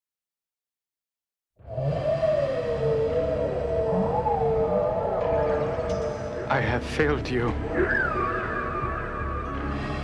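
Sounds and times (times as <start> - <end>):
wavering sci-fi drone tones: 1.6 - 6.8, 7.5 - 10.0.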